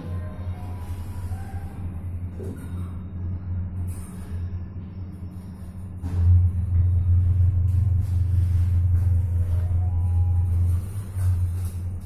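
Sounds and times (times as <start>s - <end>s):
elevator car humming: 0.0s - 12.0s.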